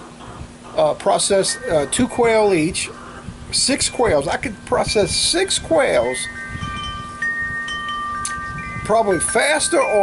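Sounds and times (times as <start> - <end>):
wind chimes ringing: 1.3 - 2.8, 4.0 - 10.0.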